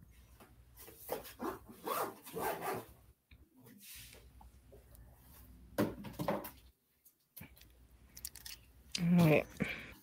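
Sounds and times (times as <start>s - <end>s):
beads rustling on wire: 7.6s - 9.6s.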